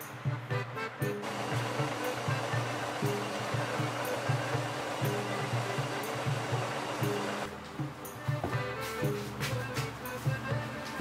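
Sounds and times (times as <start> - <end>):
music with repeating beat: 0.3 - 11.0.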